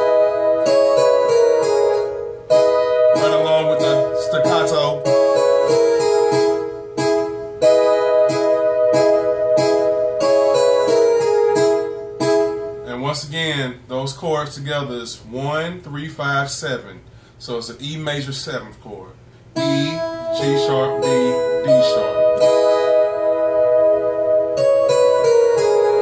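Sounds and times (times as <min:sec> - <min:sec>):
digital piano chords: 0:00.0 - 0:13.6, 0:19.5 - 0:26.0
person's voice: 0:03.2 - 0:05.1, 0:12.9 - 0:22.2.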